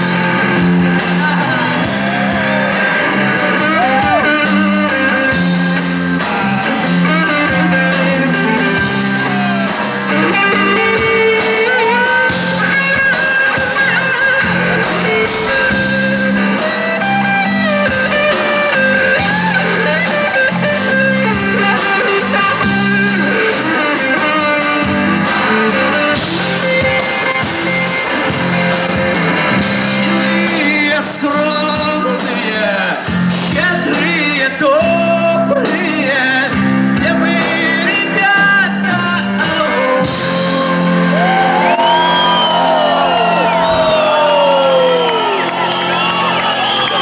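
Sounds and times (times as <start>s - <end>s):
live band music: 0.0s - 47.0s.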